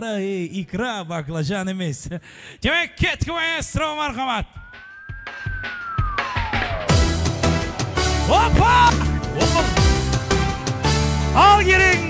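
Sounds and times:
gliding whistle-like tone: 4.6s - 7.6s.

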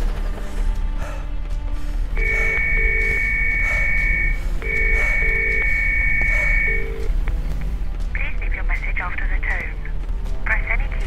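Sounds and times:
telephone ringing tone: 2.2s - 7.1s.

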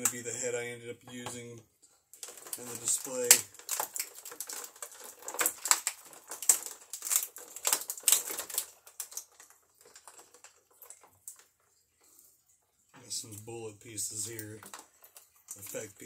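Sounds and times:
plastic packaging crackling: 2.2s - 11.8s, 13.0s - 16.0s.

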